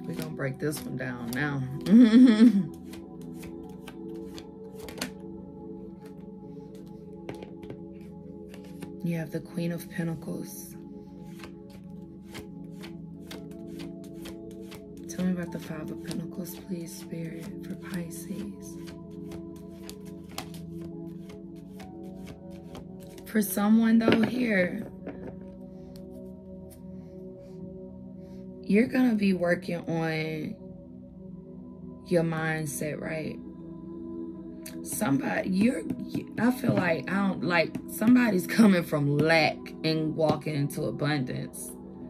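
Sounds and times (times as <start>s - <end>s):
cards being shuffled by hand: 0.0s - 5.3s, 6.0s - 9.0s, 11.2s - 23.3s
ambient music: 0.0s - 42.0s.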